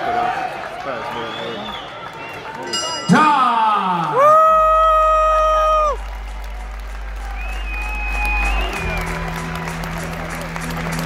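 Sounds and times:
crowd applause: 0.0 - 11.0
music over arena loudspeakers: 2.8 - 11.0
deep bass: 4.2 - 11.0.

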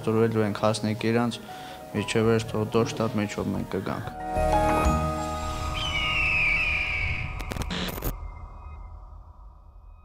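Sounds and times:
high tone gliding downward: 4.4 - 9.0
low rumble: 5.3 - 10.0
digital glitch crackles: 6.4 - 8.2.

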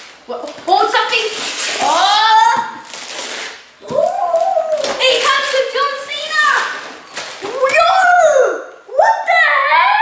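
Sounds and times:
wrapping paper crackling and tearing: 0.0 - 8.0.

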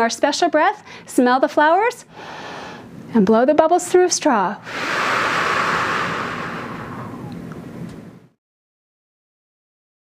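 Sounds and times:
woman exhaling through pursed lips: 4.6 - 7.5.

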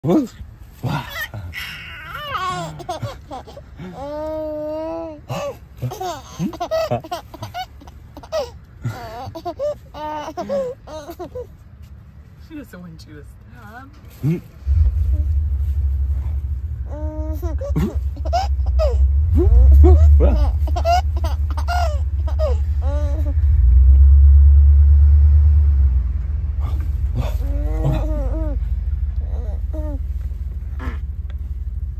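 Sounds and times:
baby laughing and squealing: 1.1 - 11.5, 16.9 - 23.5, 27.2 - 28.6
loud low rumble: 14.7 - 31.9.

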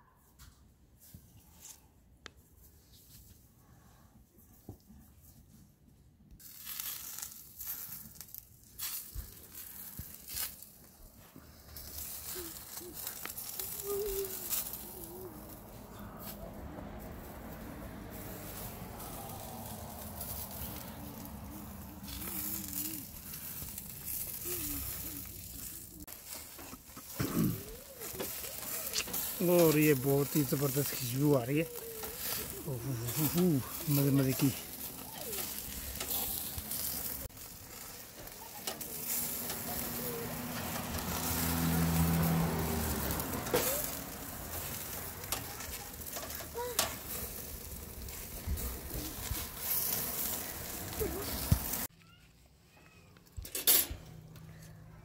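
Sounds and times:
coals and fat crackling: 6.3 - 55.0
meat sizzling on a grill: 6.4 - 51.9.

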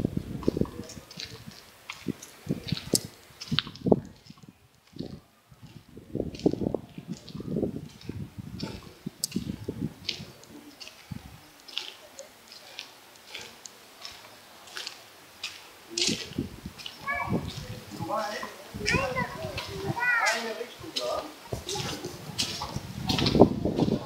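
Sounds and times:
footsteps on cobblestones: 0.4 - 24.0
small child's voice: 16.9 - 17.8, 18.8 - 20.6.

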